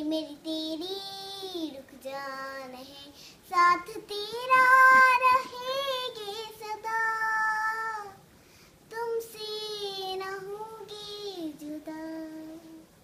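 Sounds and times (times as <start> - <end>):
child singing unaccompanied: 0.0 - 8.3, 8.9 - 13.0.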